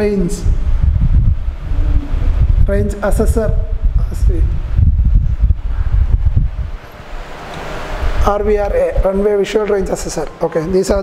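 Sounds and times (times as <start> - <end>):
low rumbling microphone noise: 0.0 - 11.0.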